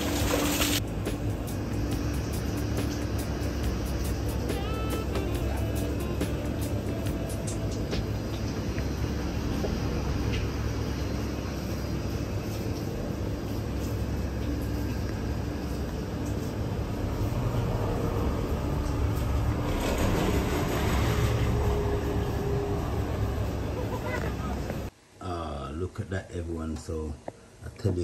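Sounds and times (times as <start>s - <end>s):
street traffic rumble: 0.0s - 24.9s
vehicle passing close by: 16.7s - 24.9s.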